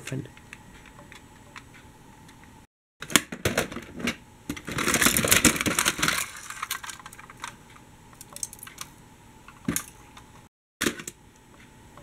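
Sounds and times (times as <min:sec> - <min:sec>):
plastic toys clattering: 0:03.3 - 0:07.6.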